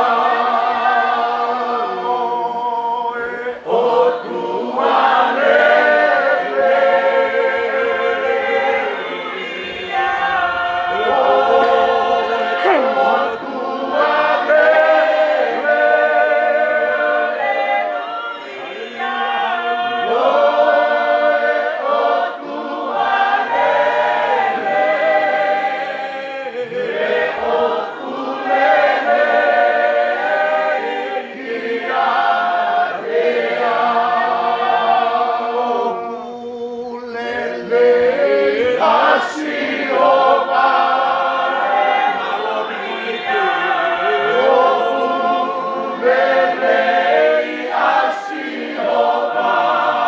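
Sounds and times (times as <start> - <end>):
choir singing a hymn: 0.0 - 50.0.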